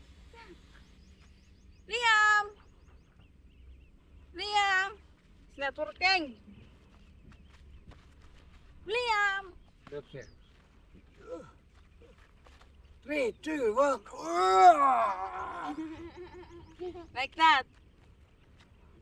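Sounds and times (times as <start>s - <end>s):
low outdoor rumble: 0.0s - 19.0s.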